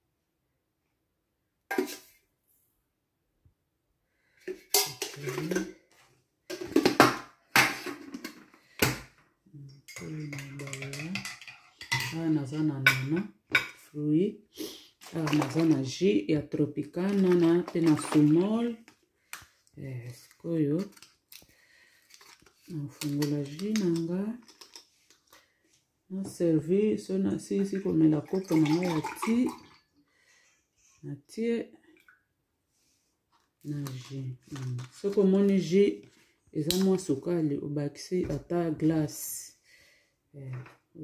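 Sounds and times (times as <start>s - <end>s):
person speaking: 4.9s - 5.8s, 9.5s - 11.4s, 12.0s - 13.3s, 13.9s - 18.9s, 19.7s - 21.0s, 22.6s - 24.5s, 26.1s - 29.7s, 33.6s - 39.6s
metal spoon clinking against mug: 9.9s - 12.2s.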